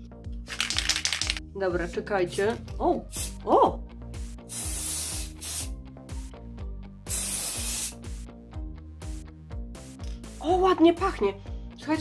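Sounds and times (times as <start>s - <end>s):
background music: 0.0s - 12.0s
aerosol spray hissing: 3.1s - 3.4s, 4.2s - 6.3s, 7.0s - 8.3s.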